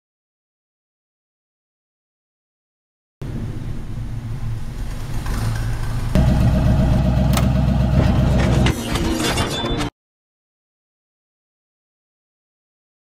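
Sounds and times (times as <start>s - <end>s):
low vehicle engine rumble: 3.2s - 8.8s.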